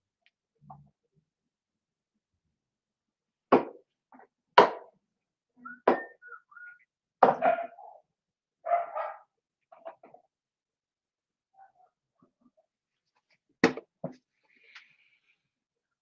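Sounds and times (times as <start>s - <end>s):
dog barking: 7.3s - 8.0s, 8.6s - 9.4s.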